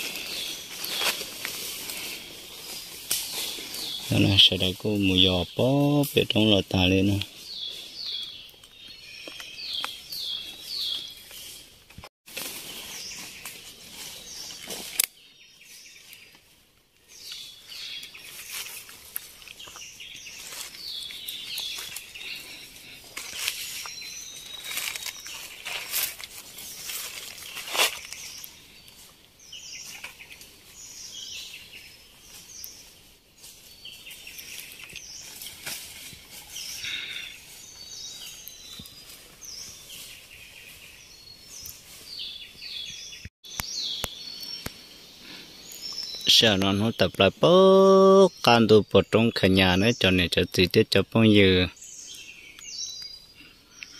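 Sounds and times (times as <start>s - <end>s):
birds chirping: 0.0s - 12.0s, 12.6s - 53.9s
rustling leaves and snapping stems: 0.0s - 48.6s.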